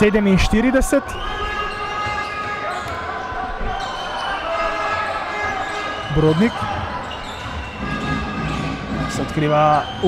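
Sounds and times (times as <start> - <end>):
indoor hall din: 0.0 - 10.0.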